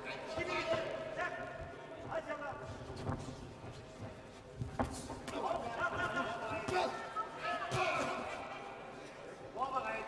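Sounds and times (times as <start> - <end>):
voices in an arena: 0.0 - 10.0.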